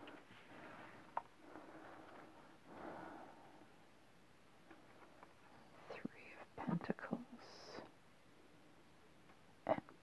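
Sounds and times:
person whispering: 0:05.8 - 0:07.9.

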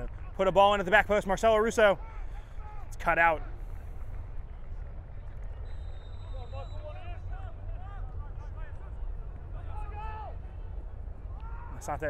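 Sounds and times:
low outdoor rumble: 0:00.0 - 0:12.0
players shouting: 0:06.2 - 0:12.0.

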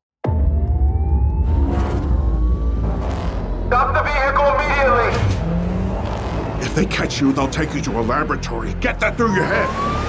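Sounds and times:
car engine rumbling: 0:01.6 - 0:10.0.

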